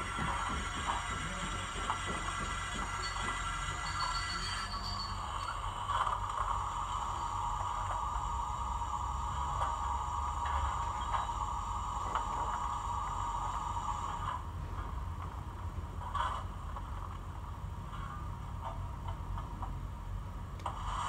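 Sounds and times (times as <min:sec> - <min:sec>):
steam locomotive sound from small speaker: 0:00.0 - 0:14.9, 0:20.6 - 0:21.0.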